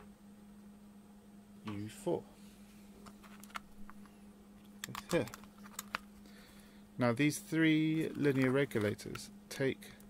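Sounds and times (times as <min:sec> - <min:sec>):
faint low hum: 0:00.0 - 0:10.0.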